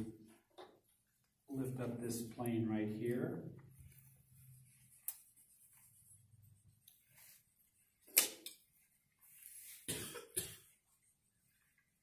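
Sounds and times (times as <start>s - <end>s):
person coughing: 9.9s - 10.7s.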